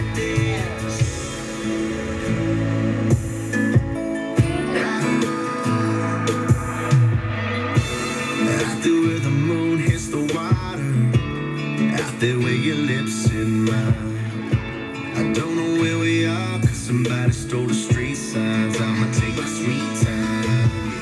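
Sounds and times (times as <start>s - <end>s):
steady drum beat: 0.0s - 12.4s, 13.2s - 21.0s
country music on radio: 0.0s - 21.0s
guitar: 0.0s - 21.0s.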